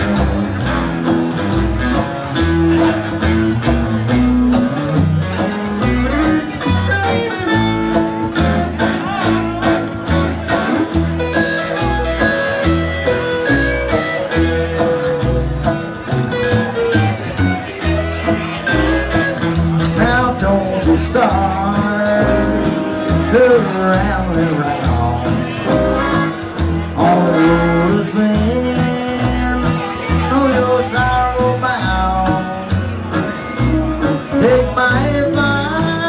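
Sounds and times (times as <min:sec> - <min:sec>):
electric guitar bending notes: 0:00.0 - 0:36.0
live country band music: 0:00.0 - 0:36.0
walking bass: 0:00.0 - 0:36.0.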